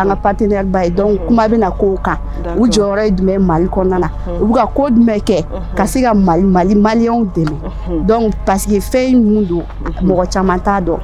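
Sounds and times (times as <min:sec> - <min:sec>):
woman talking: 0:00.0 - 0:11.0.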